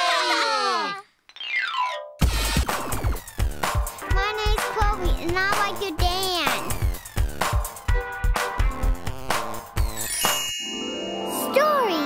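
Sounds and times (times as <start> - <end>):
electronic music with drum beat: 2.2 - 10.0.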